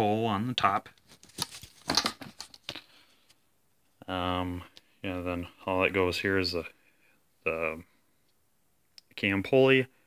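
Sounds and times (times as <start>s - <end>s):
handling noise: 1.0s - 2.7s.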